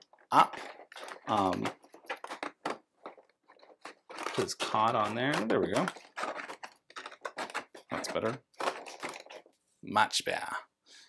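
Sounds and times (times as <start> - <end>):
plastic scrapes and clicks: 0.0 - 9.6.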